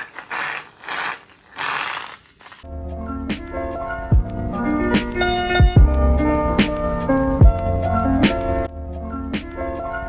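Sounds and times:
aerosol can hissing spurts: 0:00.0 - 0:02.7.

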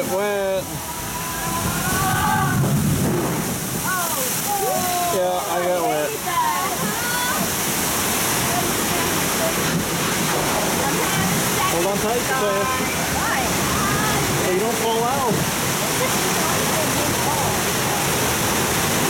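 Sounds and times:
rushing water: 0:00.0 - 0:19.0.

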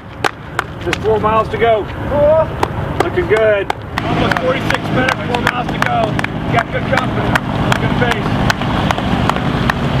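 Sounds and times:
steady low hum: 0:00.0 - 0:10.0
hand clapping: 0:02.6 - 0:09.9.

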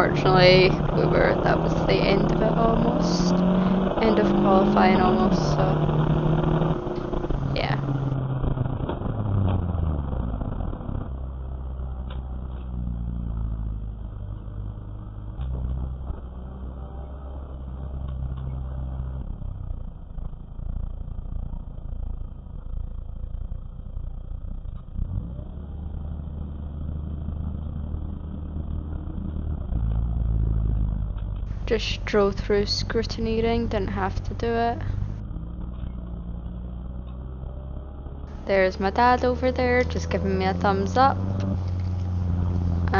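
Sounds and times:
race car engine from cabin: 0:00.0 - 0:42.9.

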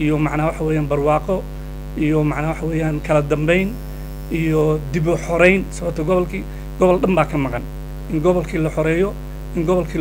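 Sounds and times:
electrical mains hum: 0:00.0 - 0:10.0
man talking: 0:00.0 - 0:10.0.

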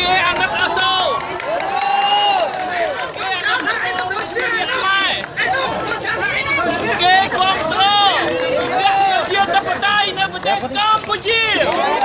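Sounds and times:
man talking loudly: 0:00.0 - 0:01.2, 0:02.2 - 0:11.9
crowd chattering: 0:00.0 - 0:12.0.

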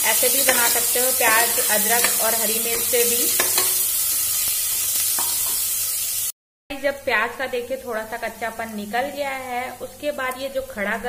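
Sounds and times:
vegetables sizzling in hot oil: 0:00.0 - 0:06.4
metal spatula knocking pan: 0:00.4 - 0:03.8.

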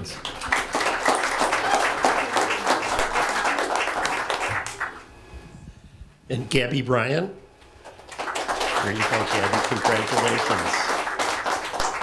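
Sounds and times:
audience applauding: 0:00.0 - 0:05.0, 0:07.9 - 0:12.0.

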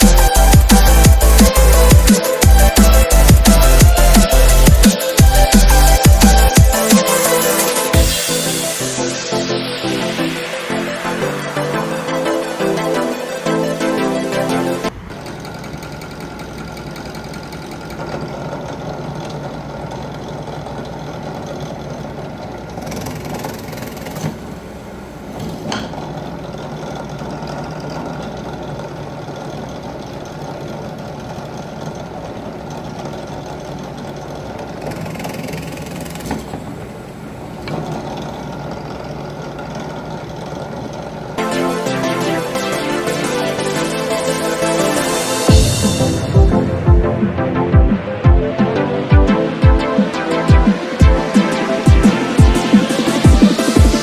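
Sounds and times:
drill press drilling wood: 0:14.9 - 0:41.3.

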